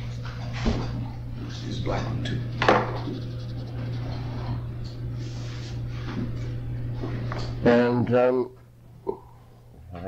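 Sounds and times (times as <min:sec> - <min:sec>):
steady low hum: 0:00.0 - 0:10.0
marker drawing on paper: 0:02.3 - 0:04.6.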